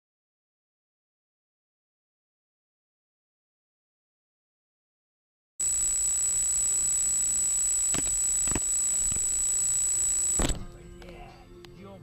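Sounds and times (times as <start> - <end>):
high-pitched whine: 5.6 - 10.6
sharp clicks: 5.6 - 10.6
faint music: 9.7 - 12.0.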